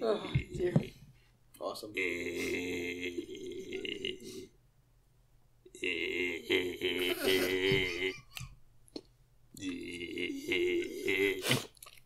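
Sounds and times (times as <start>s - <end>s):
man's guttural vocal noises: 2.0s - 4.6s, 5.7s - 8.6s, 9.5s - 11.9s.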